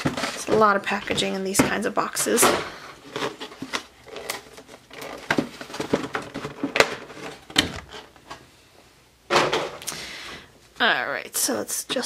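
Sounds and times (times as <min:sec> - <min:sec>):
plastic packaging crackling: 0:00.0 - 0:08.3.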